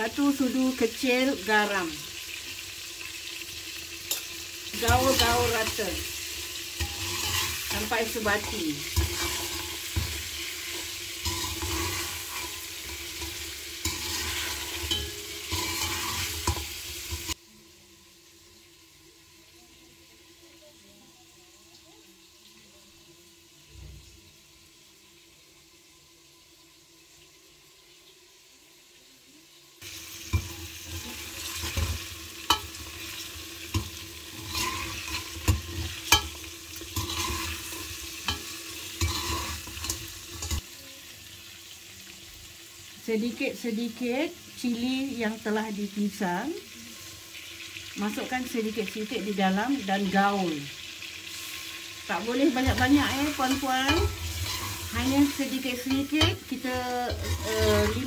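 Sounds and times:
meat sizzling in a pot: 0.0s - 58.0s
ladle scraping pot: 4.1s - 17.4s, 30.3s - 40.6s, 52.5s - 58.0s.

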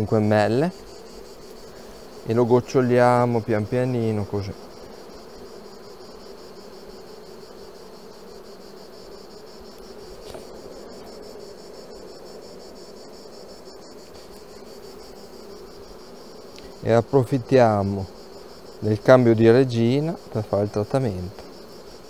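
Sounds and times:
bees humming: 0.0s - 22.0s.

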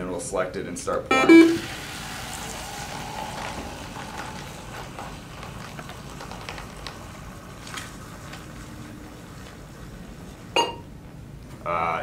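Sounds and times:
drink pouring into plastic cup: 1.6s - 10.6s.

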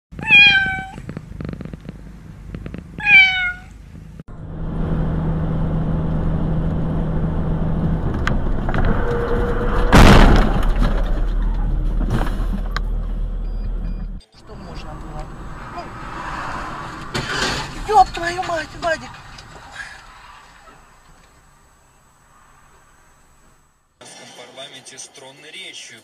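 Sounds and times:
car engine and road noise: 0.1s - 26.0s
kitten meowing: 0.2s - 1.0s, 3.0s - 3.8s
loud bang: 8.0s - 12.6s.

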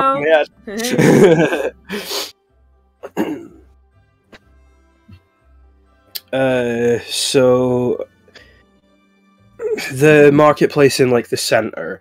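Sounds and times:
faint background music: 0.0s - 12.0s
breathy burst: 1.8s - 2.4s.

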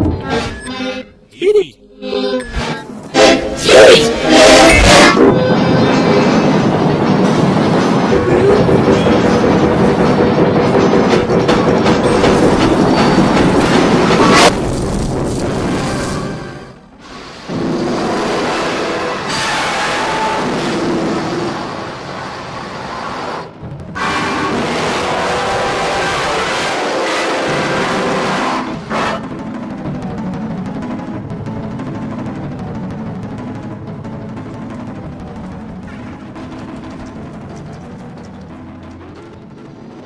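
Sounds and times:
dense distorted rattling noise: 2.8s - 40.0s.

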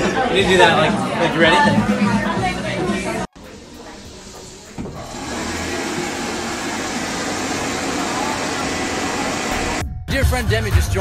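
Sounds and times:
electric hand dryer running: 4.0s - 9.8s.

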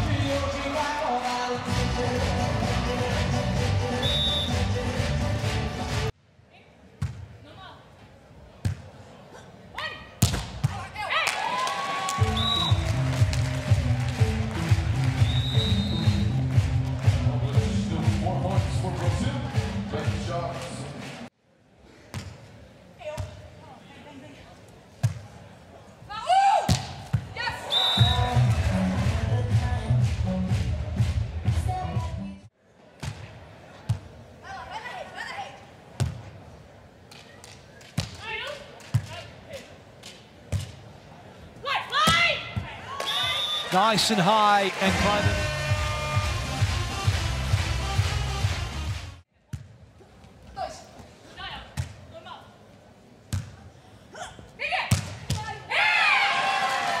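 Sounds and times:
music: 0.0s - 6.1s, 12.2s - 21.2s, 28.0s - 32.5s, 44.8s - 49.2s
arena crowd noise: 0.0s - 57.0s
volleyball smacks: 10.2s - 10.8s.

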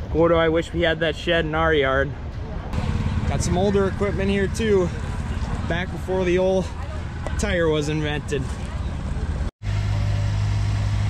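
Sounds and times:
low engine hum: 2.7s - 11.0s.

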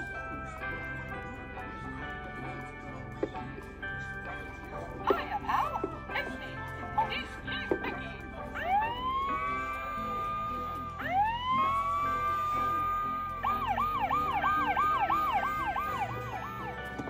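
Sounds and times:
electronic toy siren: 8.6s - 17.0s.

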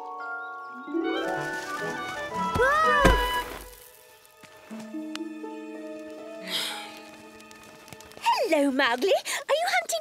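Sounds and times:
cartoon background music: 0.7s - 7.0s
loud thud of falling: 2.4s - 3.8s.

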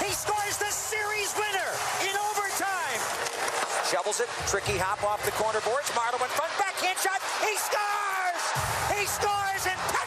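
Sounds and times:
arena crowd cheering: 0.0s - 10.0s
man shouting excitedly: 6.2s - 10.0s.

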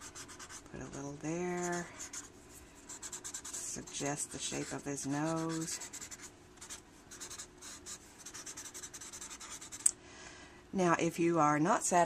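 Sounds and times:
blending stump rubbing on paper: 0.0s - 9.8s.

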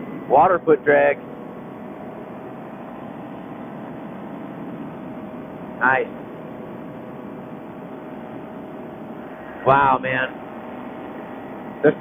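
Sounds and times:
muffled paramotor engine drone: 0.0s - 12.0s.

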